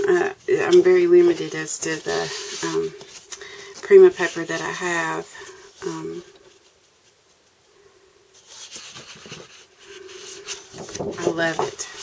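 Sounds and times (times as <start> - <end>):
paper sheets rustling and sliding: 0.5 - 5.7, 8.4 - 12.0.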